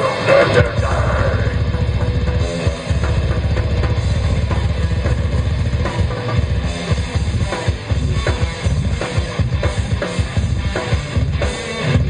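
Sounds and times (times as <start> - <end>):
death metal band playing live: 0.0 - 12.0.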